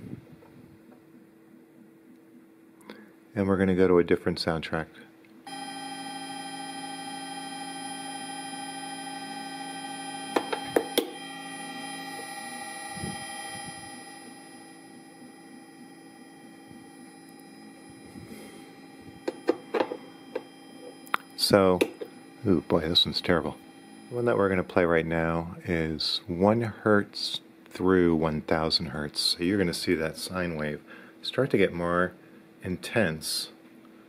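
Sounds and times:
electronic drone of held tones: 0:05.4 - 0:26.3.

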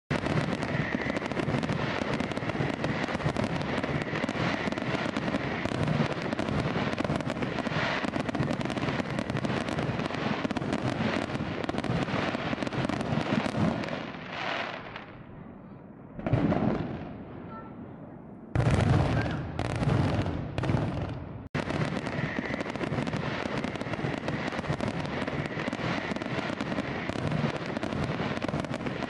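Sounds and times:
fireworks bangs and crackling: 0:00.1 - 0:29.0.

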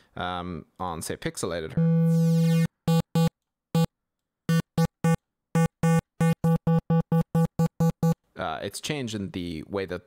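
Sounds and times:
buzzy distorted synth notes: 0:01.8 - 0:03.9, 0:04.5 - 0:08.2.

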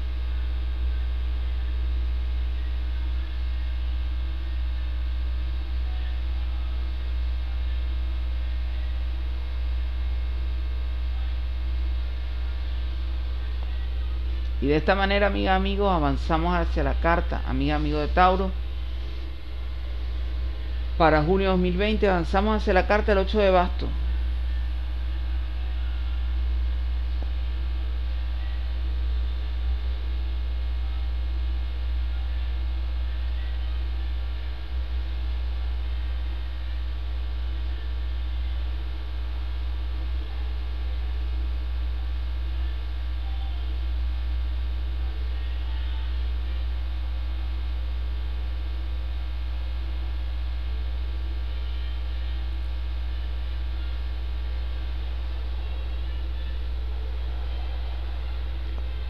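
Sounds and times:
steady low hum with overtones: 0:00.0 - 0:59.0.

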